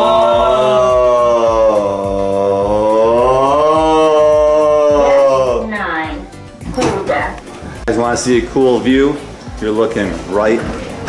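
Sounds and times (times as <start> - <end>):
person singing long note: 0.0 - 5.7.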